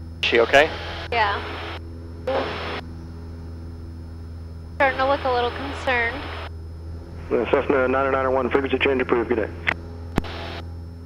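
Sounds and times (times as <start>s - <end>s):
airplane engine droning: 0.0s - 11.0s.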